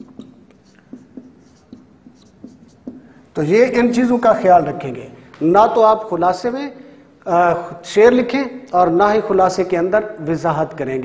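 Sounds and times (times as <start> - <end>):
marker pen writing on whiteboard: 0.0 - 4.6.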